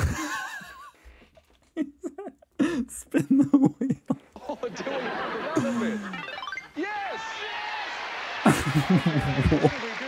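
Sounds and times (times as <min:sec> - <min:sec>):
background music: 0:05.5 - 0:07.3.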